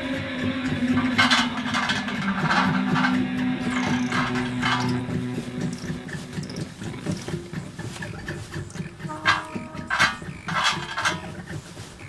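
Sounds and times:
band playing droning chord: 0:00.0 - 0:11.4
scratchy crackling noise: 0:00.0 - 0:12.0.

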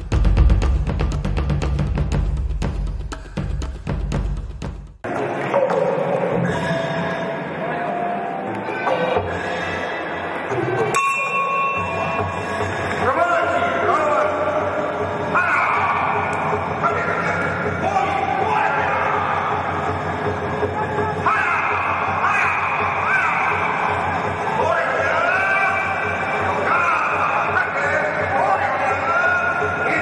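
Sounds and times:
drums: 0:00.0 - 0:07.0
bell-like ring: 0:10.9 - 0:12.5.

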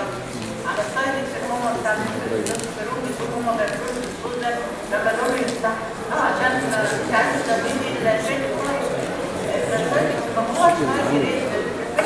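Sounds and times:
person lecturing into a microphone: 0:00.0 - 0:12.0.

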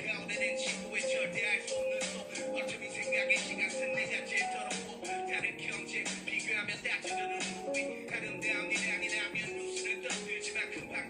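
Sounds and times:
man rapping into microphone: 0:00.0 - 0:11.0
slow melodic backing track: 0:00.0 - 0:11.0.

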